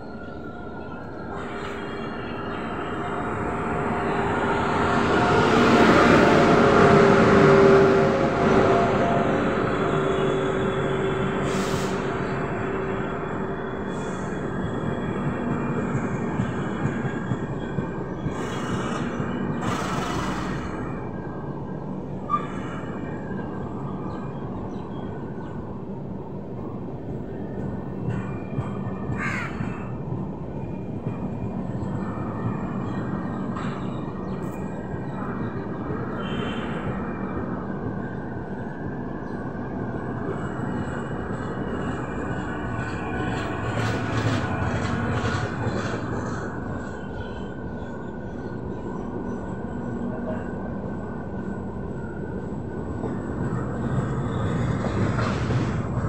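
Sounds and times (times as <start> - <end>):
train wheels rumbling on rails: 0.0 - 56.0
crows cawing: 29.1 - 29.9.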